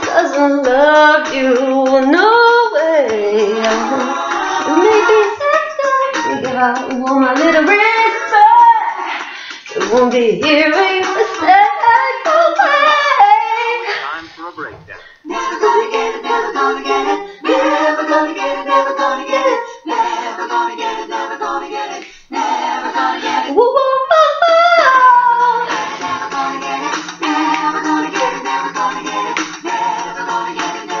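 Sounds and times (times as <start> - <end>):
woman singing: 0.0 - 14.0, 15.2 - 31.0.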